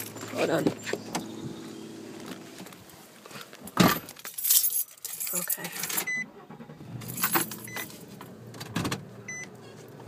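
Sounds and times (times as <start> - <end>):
keys jangling: 4.1 - 6.1, 7.0 - 7.8
car door shutting: 6.2 - 9.5.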